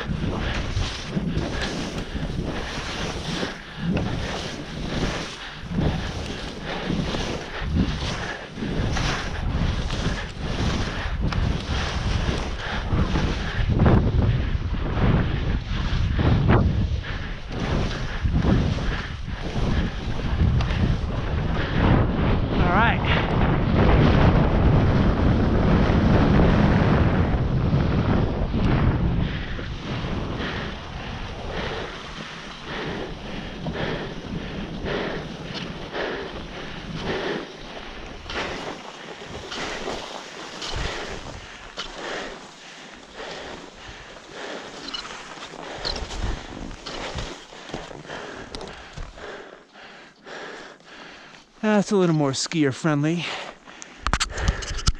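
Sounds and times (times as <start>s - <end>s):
wind buffeting microphone: 0.0s - 52.0s, 53.5s - 54.9s
skis scraping over snow: 0.0s - 54.9s
ski pole scrapes: 0.5s - 10.9s, 37.6s - 42.6s, 44.6s - 48.0s.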